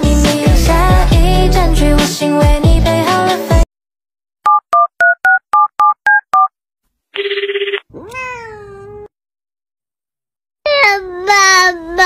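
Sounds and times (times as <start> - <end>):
telephone keypad touch-tones: 4.5 - 6.5, 7.2 - 7.8
cat meowing: 7.9 - 9.1.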